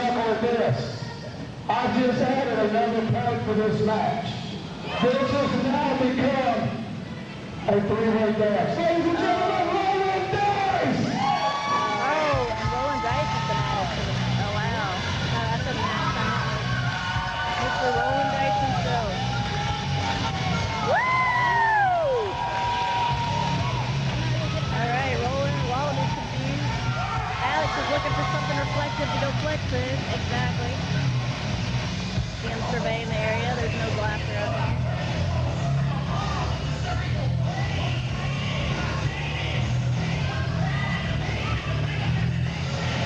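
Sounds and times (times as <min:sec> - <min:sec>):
voices echoing in a hall: 0:00.0 - 0:20.9, 0:22.2 - 0:43.0
people shouting and calling: 0:04.7 - 0:06.4, 0:08.9 - 0:31.6, 0:32.2 - 0:43.0.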